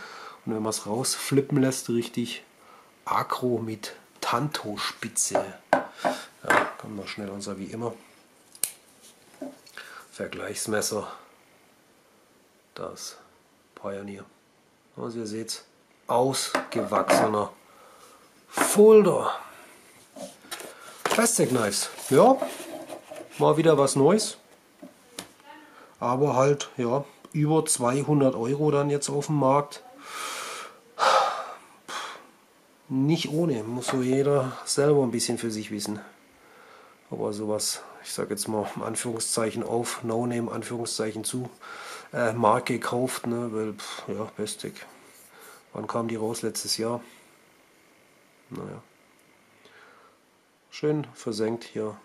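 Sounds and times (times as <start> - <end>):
man breathing: 0.0 - 0.4, 2.6 - 3.0, 5.8 - 6.4, 9.6 - 10.1, 17.6 - 18.4, 19.3 - 21.0, 30.0 - 32.3, 36.4 - 37.1, 41.6 - 42.1, 45.2 - 45.7, 49.6 - 50.3.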